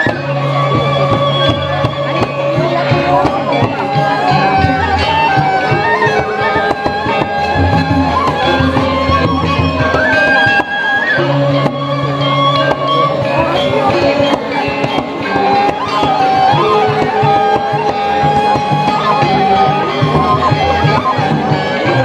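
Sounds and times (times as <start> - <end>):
metallophones playing: 0.0 - 22.0
sliding flute-like melody: 0.0 - 22.0.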